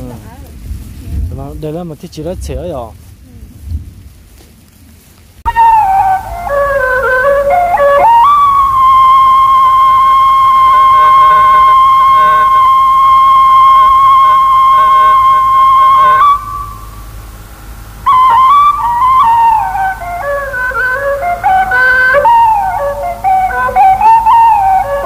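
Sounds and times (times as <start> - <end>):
flute-like wind instrument music: 5.5 - 25.0.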